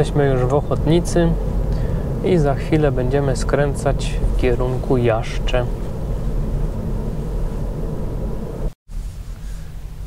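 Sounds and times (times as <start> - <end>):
road and tyre rumble: 0.0 - 10.0.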